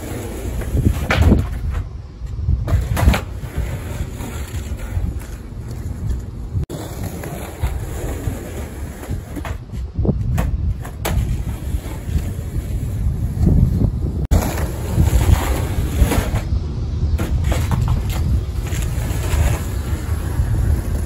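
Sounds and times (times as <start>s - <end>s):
skateboard clacks: 0.0s - 1.9s, 2.6s - 13.7s, 17.2s - 21.0s
skateboard wheels rolling on asphalt: 0.0s - 21.0s
wind buffeting microphone: 0.0s - 21.0s.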